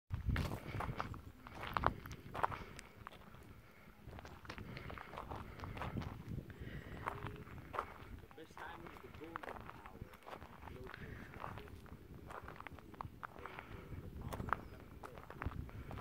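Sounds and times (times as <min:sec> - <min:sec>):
footsteps on gravel: 0:00.2 - 0:16.0.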